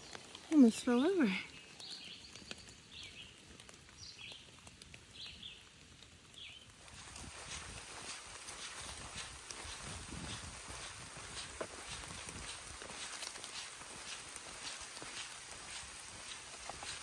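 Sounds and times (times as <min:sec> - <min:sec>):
footsteps on dirt trail: 0:06.8 - 0:17.0.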